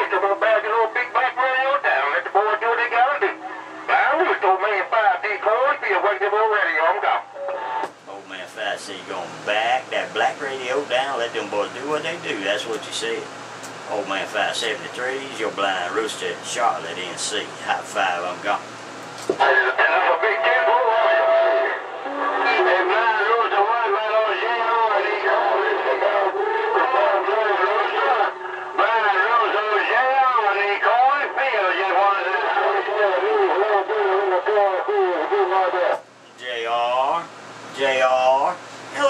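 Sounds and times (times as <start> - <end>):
steady radio tone: 0.0 - 8.3, 19.4 - 36.0
garbled voice over radio: 19.4 - 35.9.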